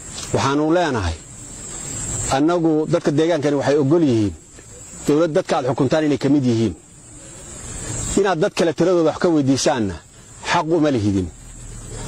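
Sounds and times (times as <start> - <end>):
steady background hiss: 0.0 - 12.0
man speaking: 0.3 - 1.2, 2.3 - 6.9, 8.1 - 11.4.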